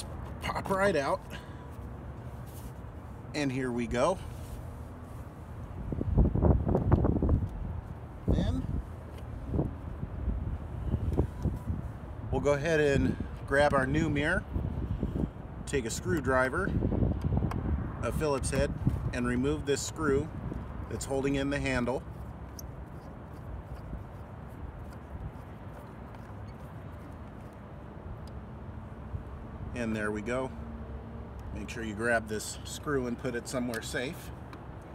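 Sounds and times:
outdoor background noise: 0.0 - 34.9
wind buffeting microphone: 5.6 - 27.0.

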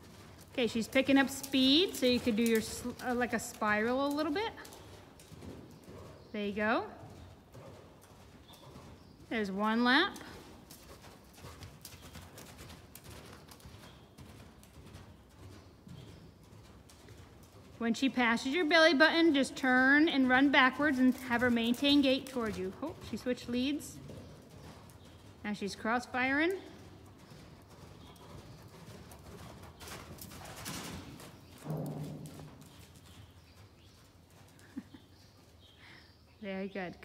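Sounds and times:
horse hooves cantering on sand: 0.0 - 35.8.

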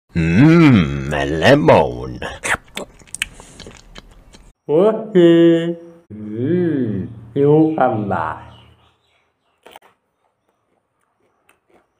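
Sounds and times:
lip-smacking clicks: 2.5 - 4.5.

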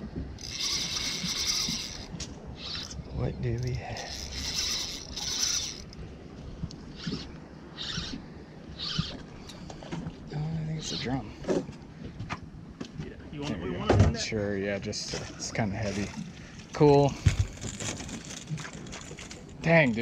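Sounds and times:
fishing reel buzzing: 0.4 - 3.0, 3.6 - 6.0, 6.8 - 9.3.

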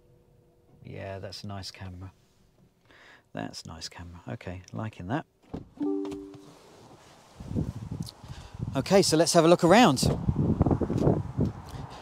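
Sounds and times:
two-tone electronic car chime: 5.8 - 6.6.

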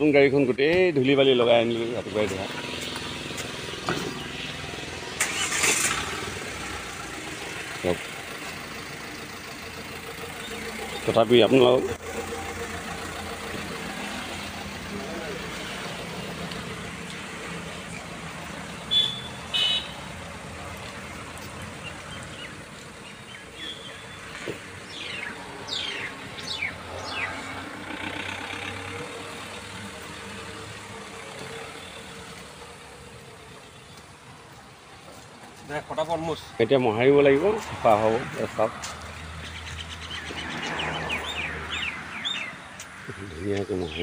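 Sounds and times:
diesel engine idling: 0.0 - 44.0.

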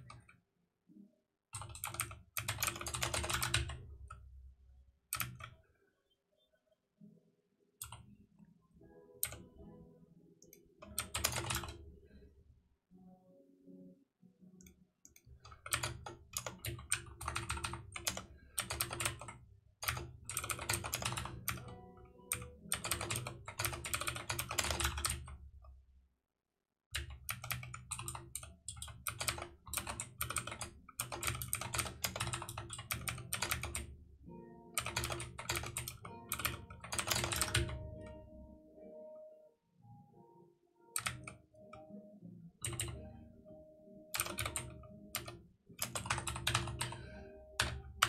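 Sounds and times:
fast typing on keyboard: 1.6 - 3.9, 5.2 - 5.5, 10.8 - 11.8, 15.2 - 25.4, 27.0 - 33.9, 34.8 - 38.2, 41.0 - 41.8, 42.6 - 43.1, 44.1 - 48.0.

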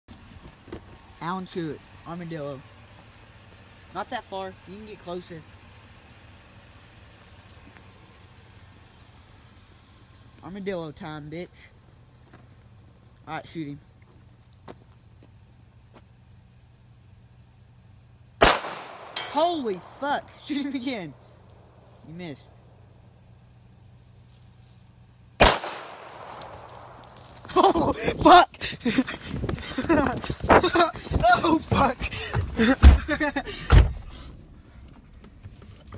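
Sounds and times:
vehicle engine running: 0.1 - 35.9
pistol gunshot with echo: 18.4 - 19.9, 25.4 - 27.1.

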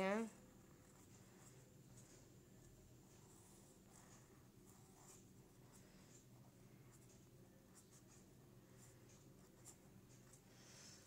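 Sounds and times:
pen scratching on paper: 0.5 - 2.3, 3.0 - 10.5.

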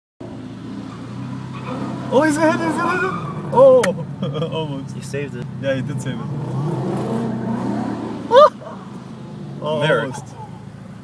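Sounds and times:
car engine revving: 0.2 - 11.0.

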